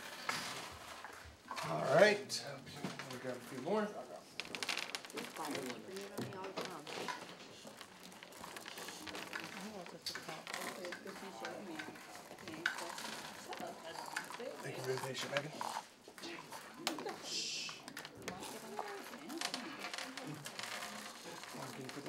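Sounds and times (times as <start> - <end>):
low chatter of students: 1.3 - 22.0
candies clicking and rattling: 2.8 - 22.0.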